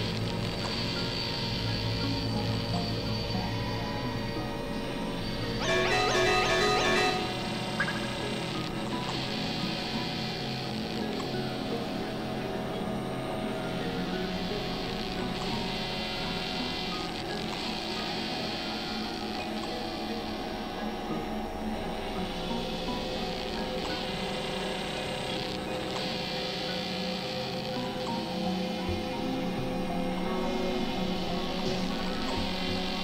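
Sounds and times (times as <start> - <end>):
electronic drone music: 2.1 - 10.4.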